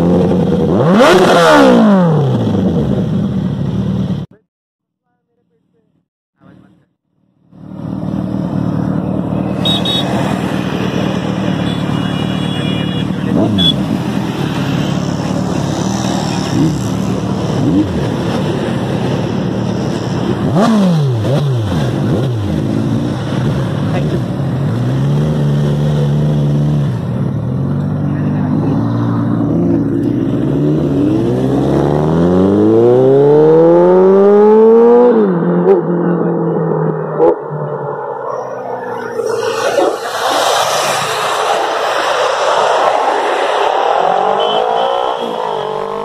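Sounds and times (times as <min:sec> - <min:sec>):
motorcycle engines revving: 0:00.0 - 0:04.4, 0:06.4 - 0:46.0.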